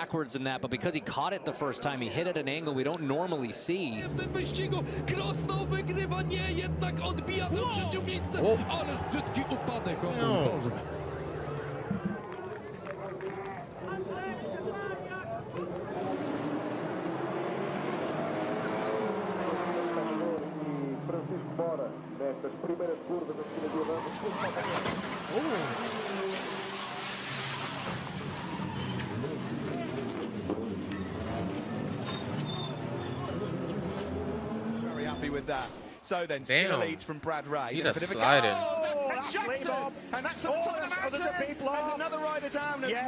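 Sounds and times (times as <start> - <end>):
race commentary voices: 0.0 - 43.0
race car engine noise: 3.7 - 36.0.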